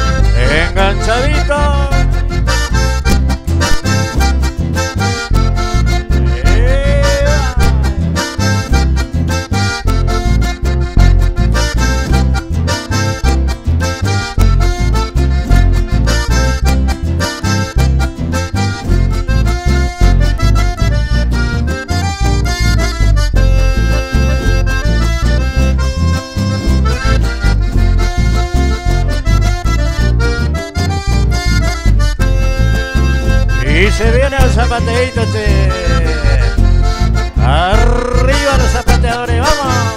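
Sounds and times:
acoustic guitar: 0.0 - 39.9
button accordion: 0.0 - 39.9
electric bass: 0.0 - 39.9.

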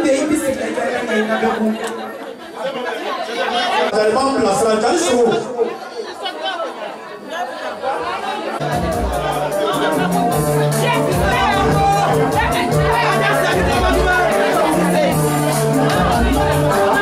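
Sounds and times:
voices talking in large room: 0.0 - 17.0
deep bass line: 8.6 - 17.0
music: 8.6 - 17.0.

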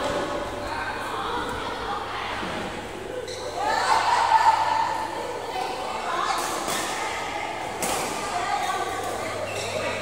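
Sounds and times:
players' voices echoing in hall: 0.0 - 10.0.

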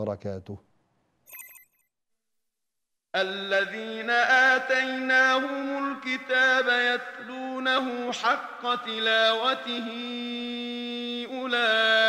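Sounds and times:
bright electronic chime: 1.3 - 1.8.

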